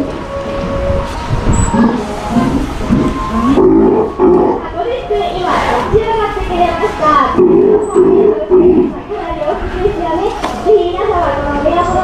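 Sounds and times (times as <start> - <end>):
sea lion calling: 0.0 - 9.7.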